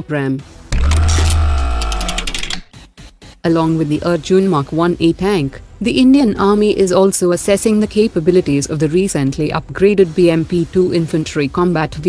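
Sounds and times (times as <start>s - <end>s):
held musical tone: 0.8s - 2.7s
mechanical ticks: 0.8s - 2.7s.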